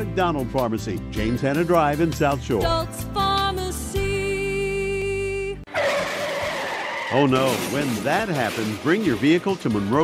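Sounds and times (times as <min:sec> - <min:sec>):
car tyres screeching in a skid: 0:05.7 - 0:09.1.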